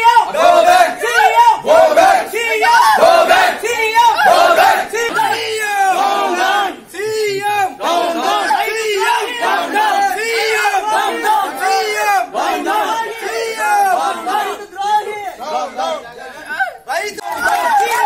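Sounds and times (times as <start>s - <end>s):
crowd shouting slogans: 0.0s - 18.0s.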